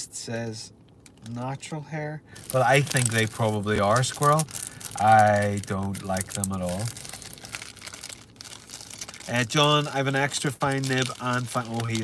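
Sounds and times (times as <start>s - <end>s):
crinkling and rustling: 2.4s - 12.0s.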